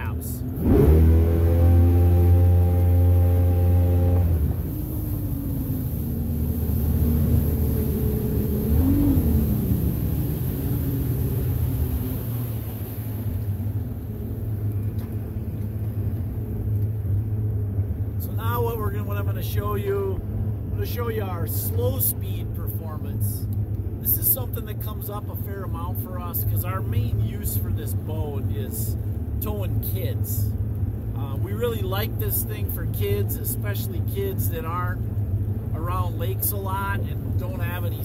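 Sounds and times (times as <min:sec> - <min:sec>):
jet boat engine roaring: 0:00.0 - 0:38.0.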